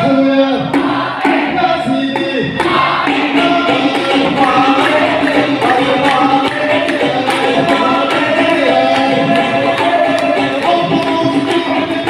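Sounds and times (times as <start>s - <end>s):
group of voices singing: 0.0s - 12.0s.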